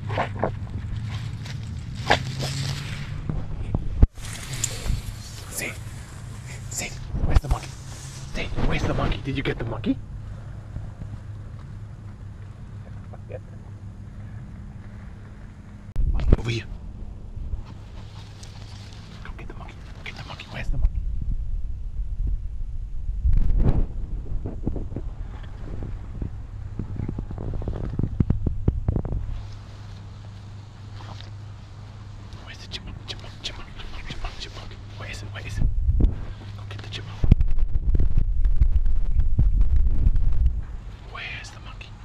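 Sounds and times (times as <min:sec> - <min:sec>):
plant leaves rustling: 0:00.0 - 0:09.6, 0:17.7 - 0:20.6, 0:29.1 - 0:35.4
steady low hum: 0:00.0 - 0:42.0
wind rumbling on microphone: 0:00.0 - 0:42.0.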